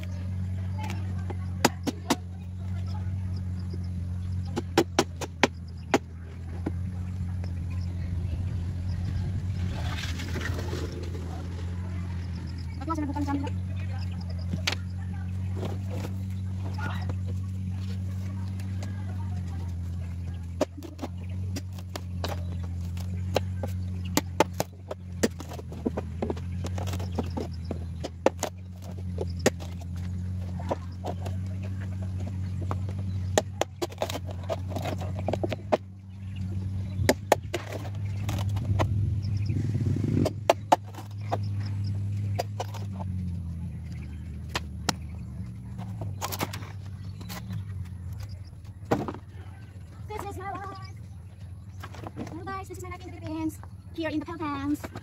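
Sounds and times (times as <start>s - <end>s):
low motor hum: 0.0s - 55.0s
hatchet chopping bamboo: 0.8s - 2.3s, 4.4s - 6.2s, 20.5s - 31.2s.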